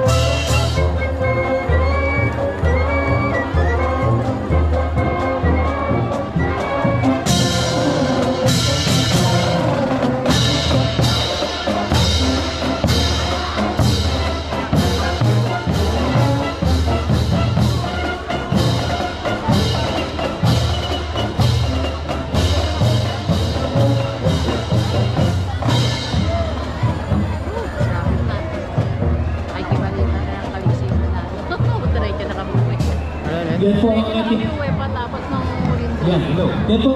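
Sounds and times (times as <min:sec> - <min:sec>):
marching band playing: 0:00.0 - 0:36.9.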